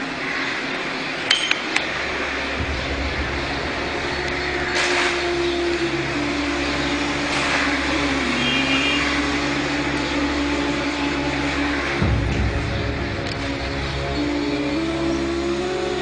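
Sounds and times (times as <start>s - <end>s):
engine hum: 0.0s - 16.0s.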